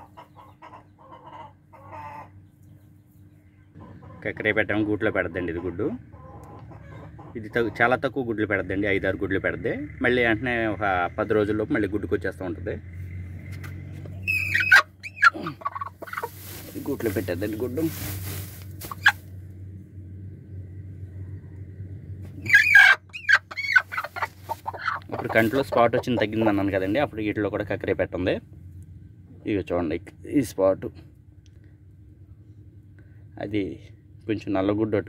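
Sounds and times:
hens clucking: 0:00.0 - 0:02.5, 0:03.7 - 0:08.6, 0:13.4 - 0:19.3, 0:22.2 - 0:27.3.

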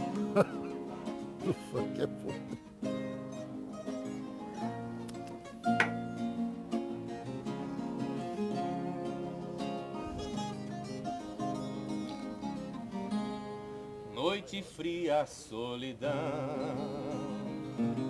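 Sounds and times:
plucked string instruments playing: 0:00.0 - 0:14.1, 0:16.2 - 0:18.0.

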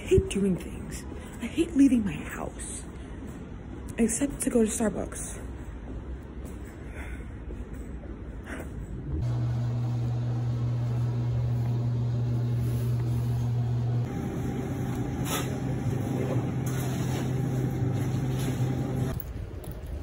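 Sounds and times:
low mechanical hum: 0:00.0 - 0:20.0
noisier hum: 0:00.0 - 0:20.0.

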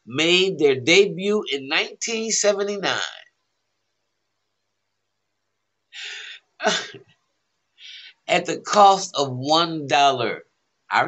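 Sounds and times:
soft breath: 0:07.8 - 0:08.3.

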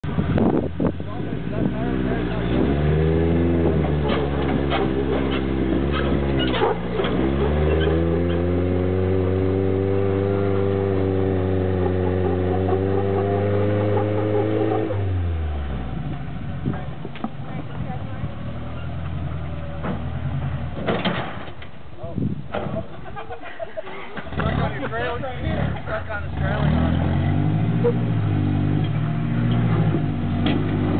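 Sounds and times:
buggy engine revving hard: 0:00.0 - 0:17.0, 0:17.7 - 0:21.4, 0:24.2 - 0:30.9.

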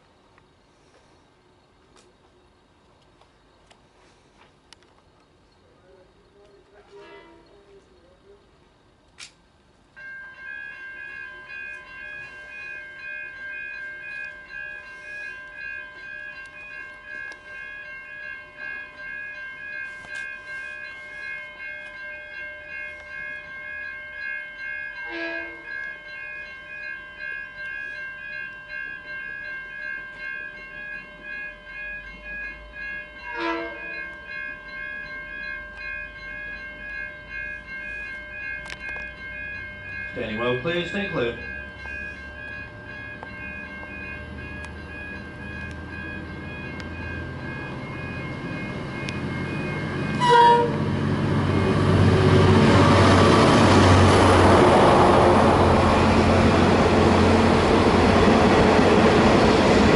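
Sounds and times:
diesel locomotive engine rumble: 0:00.0 - 0:59.9
train horn blasts: 0:06.8 - 0:07.6, 0:25.0 - 0:25.7, 0:33.3 - 0:34.0, 0:50.1 - 0:51.0
high-pitched steady ringing: 0:09.6 - 0:59.9.

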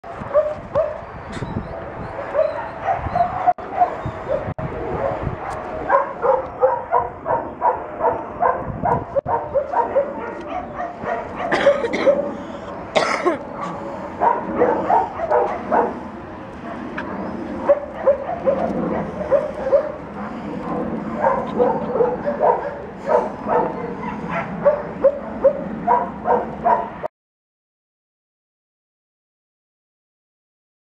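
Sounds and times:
dogs whining and yipping: 0:00.1 - 0:12.6, 0:13.5 - 0:27.0.

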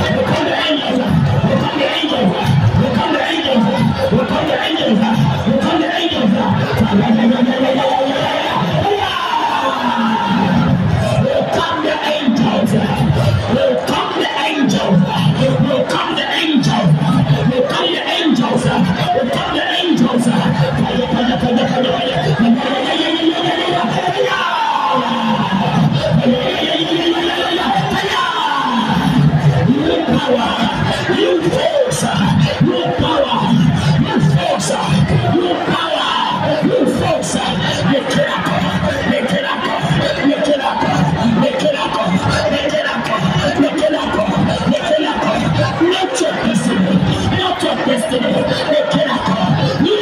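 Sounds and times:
church praise music: 0:00.0 - 0:50.0
man singing through a microphone: 0:00.0 - 0:50.0.

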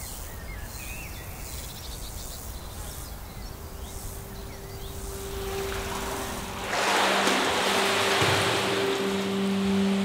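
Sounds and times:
insects chirping: 0:00.0 - 0:10.0.

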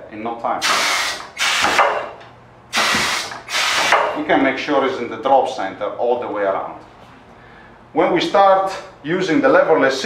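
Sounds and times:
compressed air hiss: 0:00.6 - 0:01.8, 0:02.7 - 0:04.1.

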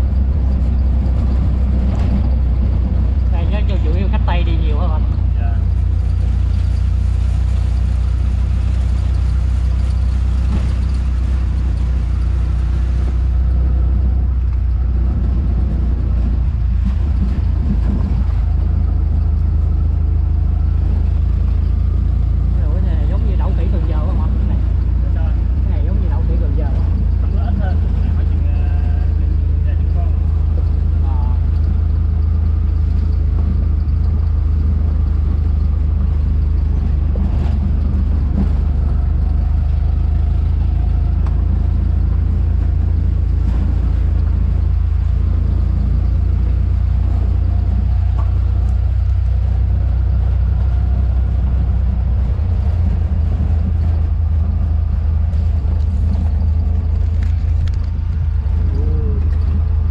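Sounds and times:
vehicle driving rumble: 0:00.0 - 0:59.9.

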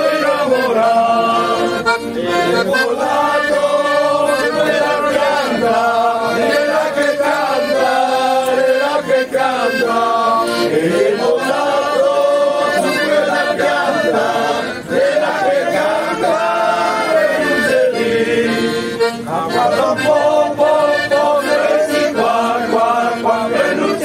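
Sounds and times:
men singing in chorus: 0:00.0 - 0:24.0.

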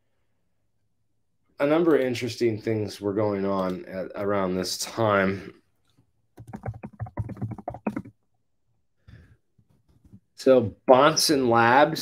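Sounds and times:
typing on computer keyboard: 0:06.4 - 0:08.1.

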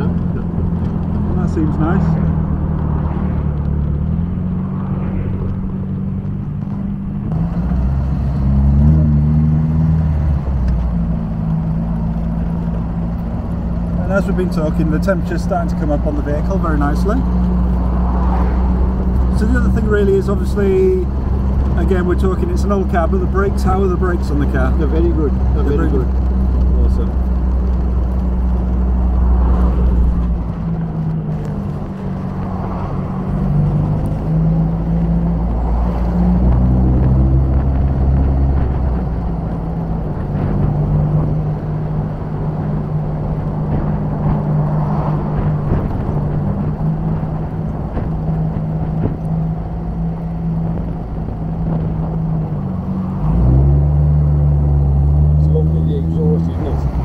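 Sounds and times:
car engine accelerating through gears: 0:00.0 - 0:57.0
exhaust noise: 0:00.0 - 0:57.0
road noise: 0:00.0 - 0:57.0.

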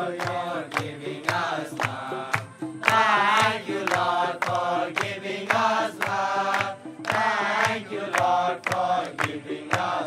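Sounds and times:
sharp beat: 0:00.0 - 0:10.0
young men singing in unison: 0:00.0 - 0:10.0.

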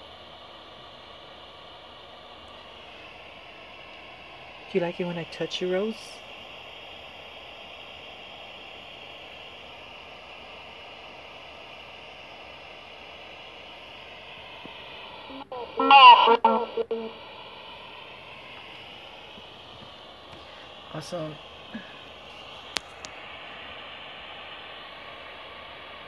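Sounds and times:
static through phone speaker: 0:07.2 - 0:26.0
garbled voice-like fragment: 0:15.3 - 0:17.1.

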